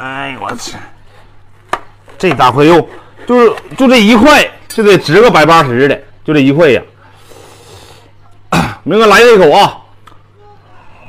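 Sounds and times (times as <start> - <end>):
man coughing: 8.5 - 8.9.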